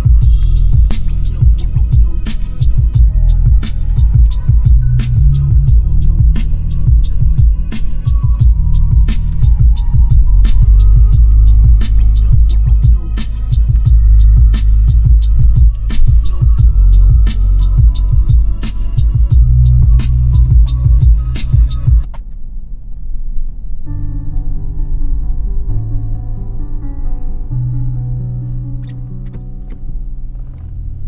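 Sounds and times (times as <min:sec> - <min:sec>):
chill track through car speakers: 0:00.0 - 0:31.0.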